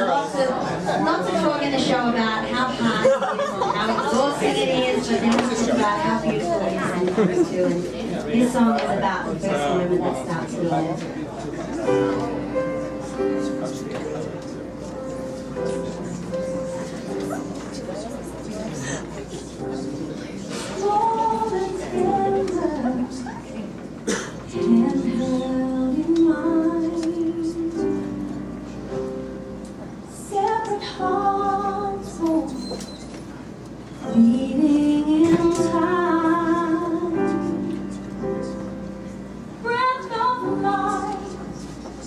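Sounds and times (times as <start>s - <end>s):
piano accompaniment: 3.0s - 42.0s
woman singing: 20.7s - 23.5s, 24.5s - 28.1s, 30.1s - 32.8s, 34.0s - 37.6s, 39.6s - 41.7s.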